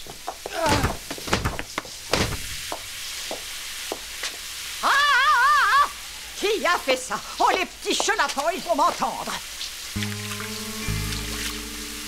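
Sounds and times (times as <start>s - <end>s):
dull thumps: 0.3s - 2.8s.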